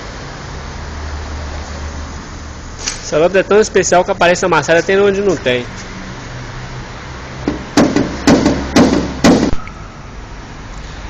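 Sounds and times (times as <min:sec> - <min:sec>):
hammer tapping sheet metal: 0:07.5 - 0:09.6.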